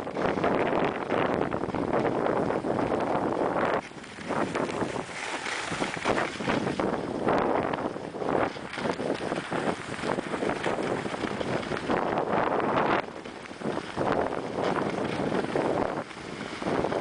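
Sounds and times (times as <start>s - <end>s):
skis scraping over snow: 0.0s - 17.0s
wind rushing over microphone: 0.0s - 17.0s.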